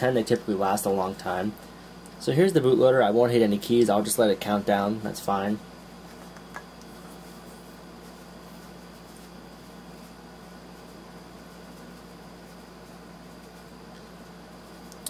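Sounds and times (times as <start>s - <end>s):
computer hum and hiss: 0.0s - 15.0s.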